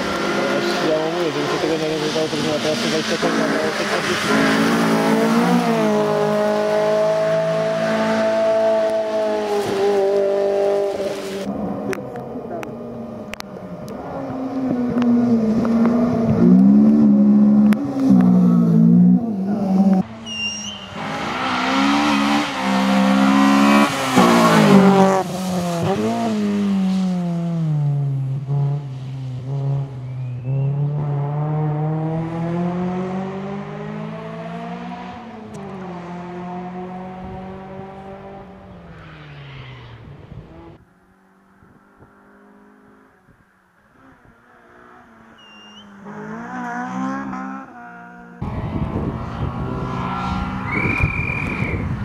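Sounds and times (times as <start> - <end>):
rally car engine revving: 0.0 - 40.8, 43.9 - 52.0.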